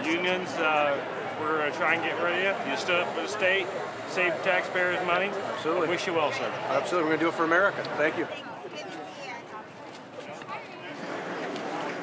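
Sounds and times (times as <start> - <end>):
crowd talking indistinctly: 0.0 - 12.0.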